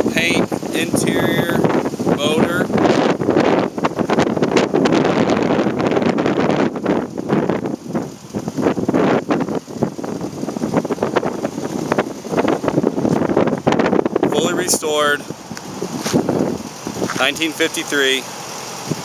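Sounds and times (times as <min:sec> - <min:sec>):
wind buffeting microphone: 0:00.0 - 0:18.2, 0:18.8 - 0:19.0.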